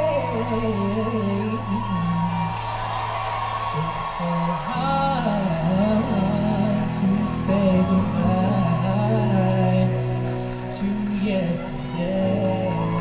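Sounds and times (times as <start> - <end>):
man singing a slow ballad: 0.0 - 2.8, 3.7 - 13.0
sustained musical backing: 0.0 - 13.0.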